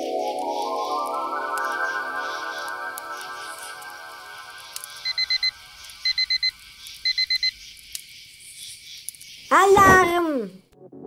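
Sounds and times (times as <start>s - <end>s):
music note: 0.0s - 5.7s
digital alarm clock beeping: 4.6s - 7.6s.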